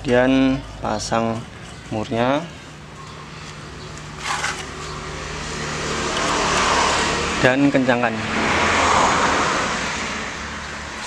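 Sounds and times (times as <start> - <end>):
vehicle engine running: 0.0 - 8.2.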